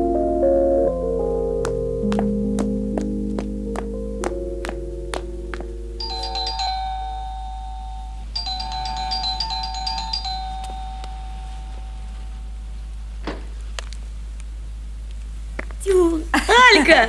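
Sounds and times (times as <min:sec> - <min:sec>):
soft instrumental music: 0:00.0 - 0:12.6
electric doorbell ringing: 0:06.0 - 0:12.6.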